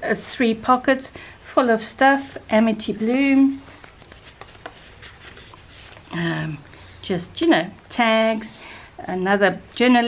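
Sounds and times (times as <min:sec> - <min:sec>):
paper and card rustling: 0:02.8 - 0:08.8.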